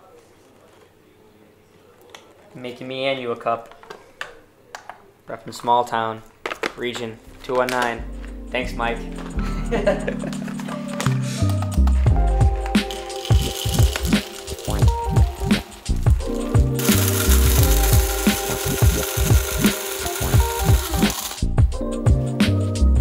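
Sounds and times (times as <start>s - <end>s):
background music with steady beat: 6.6s - 23.0s
electric coffee grinder grinding: 12.7s - 21.5s.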